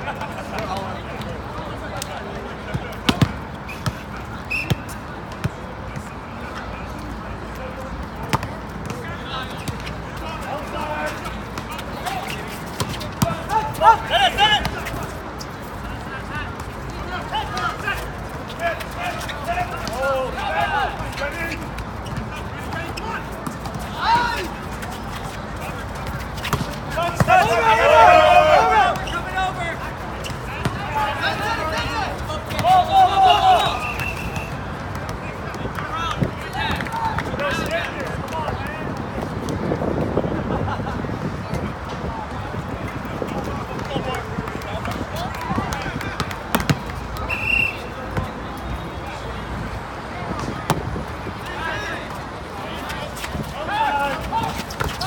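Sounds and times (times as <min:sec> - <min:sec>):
background chatter: 0:00.0 - 0:55.0
players shouting: 0:08.9 - 0:38.9, 0:50.3 - 0:55.0.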